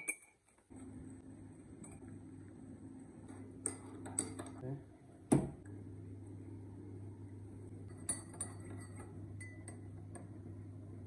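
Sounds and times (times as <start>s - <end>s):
spoon and mug clinking: 0.0s - 0.4s, 3.6s - 4.6s, 7.8s - 10.0s.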